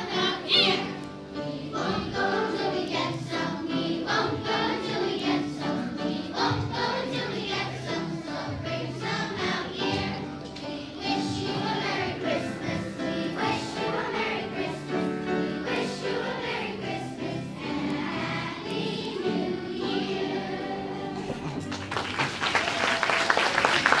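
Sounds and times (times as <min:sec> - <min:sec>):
children's choir singing: 0:00.0 - 0:21.7
applause: 0:21.4 - 0:24.0.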